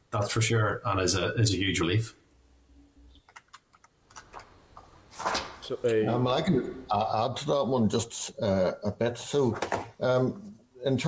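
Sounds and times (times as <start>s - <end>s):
computer keyboard keystrokes: 3.2s - 4.5s.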